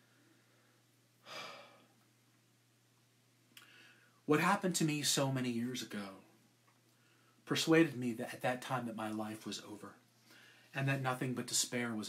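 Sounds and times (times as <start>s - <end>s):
man sighing: 1.2s - 1.9s.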